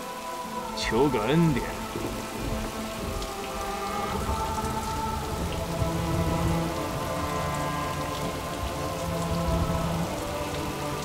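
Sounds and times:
score music of held notes: 0:00.0 - 0:11.0
steady rain falling: 0:00.0 - 0:11.0.

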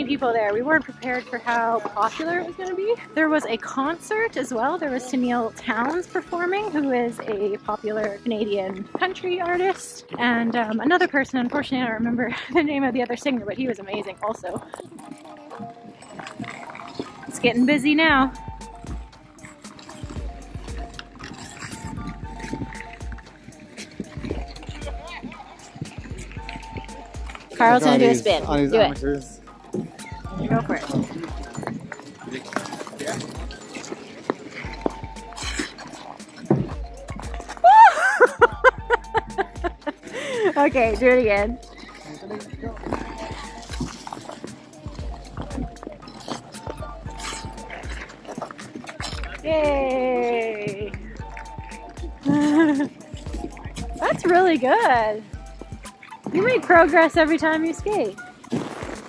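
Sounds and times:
music playing: 0:00.0 - 0:59.0
skate blades scraping on ice: 0:13.4 - 0:17.7, 0:19.2 - 0:28.1, 0:29.8 - 0:38.3, 0:41.5 - 0:49.5, 0:50.6 - 0:59.0
crowd chatter: 0:19.4 - 0:37.6, 0:38.4 - 0:59.0.

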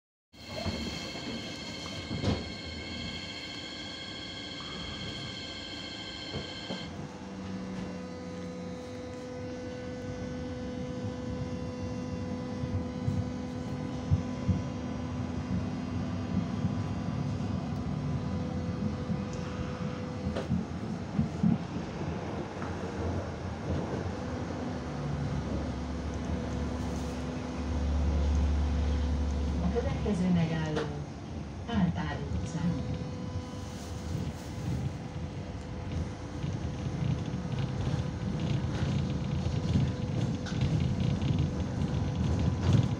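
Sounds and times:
electrical hum: 0:00.4 - 0:08.6
high-pitched tram whine: 0:00.4 - 0:10.4
deep rumble: 0:32.8 - 0:42.9
wheels rolling on rails: 0:35.6 - 0:42.9.

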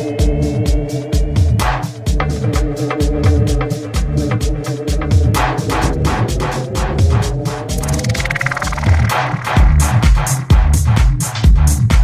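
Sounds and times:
tech house music: 0:00.0 - 0:12.0.

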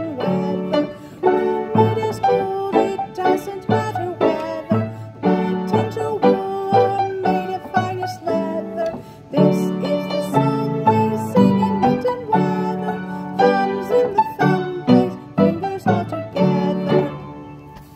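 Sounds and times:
keyboard playing simple tune: 0:00.0 - 0:17.9.

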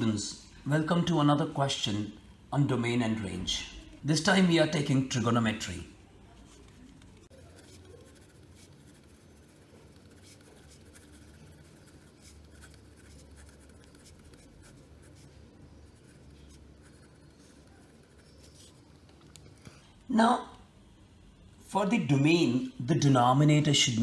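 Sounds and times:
pen scratching on paper: 0:07.2 - 0:19.2.

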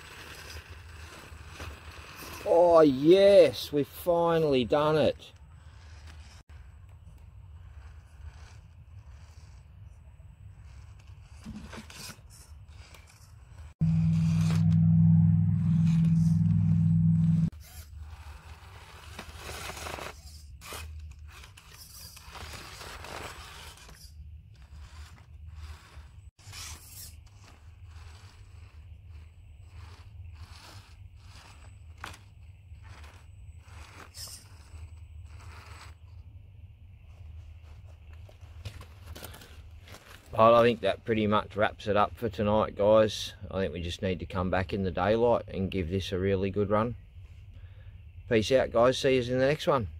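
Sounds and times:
toy car motor and gearbox hum: 0:00.0 - 0:02.8, 0:03.9 - 0:14.8, 0:17.3 - 0:36.3
tyres scraping on rock: 0:00.0 - 0:14.2, 0:17.5 - 0:36.4, 0:37.2 - 0:41.7
louder low steady hum: 0:13.8 - 0:17.5.

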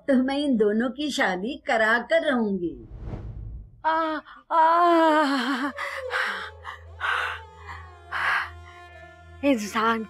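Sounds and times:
elderly woman moaning: 0:03.9 - 0:07.5.

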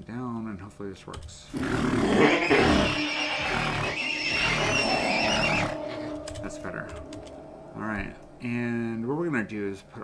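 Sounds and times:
horse whinny: 0:01.6 - 0:06.3.

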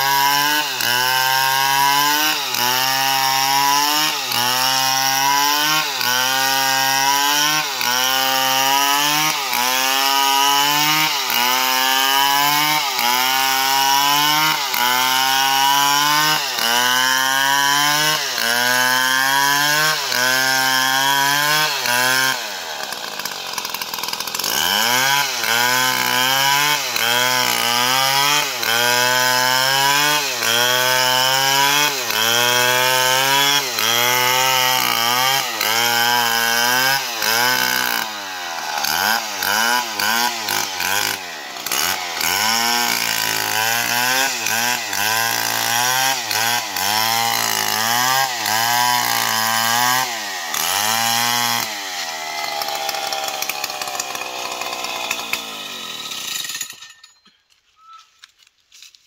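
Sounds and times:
chainsaw cutting wood: 0:00.0 - 0:59.0.

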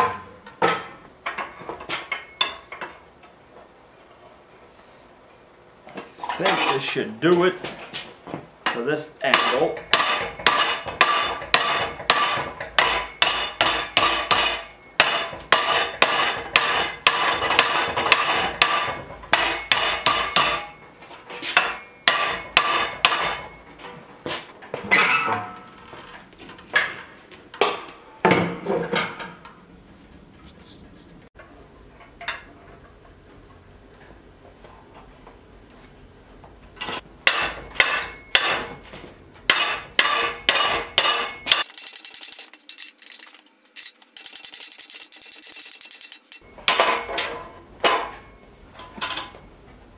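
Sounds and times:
hammer striking metal bar: 0:09.3 - 0:20.8, 0:21.6 - 0:23.6, 0:37.2 - 0:38.8, 0:39.5 - 0:42.9.

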